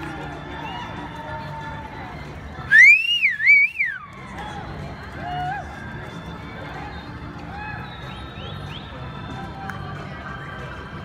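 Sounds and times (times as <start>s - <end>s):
faint crowd noise: 0.0s - 11.0s
shrill human whistle: 2.7s - 4.0s, 7.6s - 9.1s.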